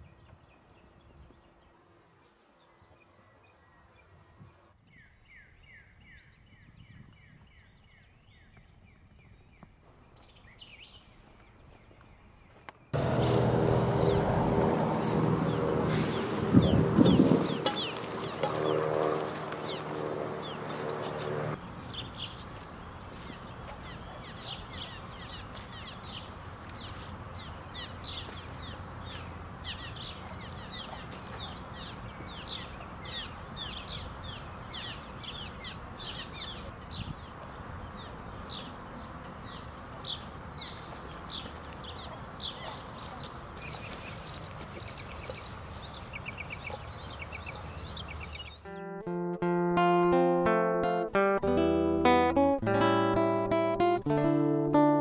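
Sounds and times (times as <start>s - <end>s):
steady traffic hum: 11.4s - 48.7s
freeway traffic: 13.0s - 48.6s
swallows chattering: 15.4s - 18.9s, 19.5s - 48.7s.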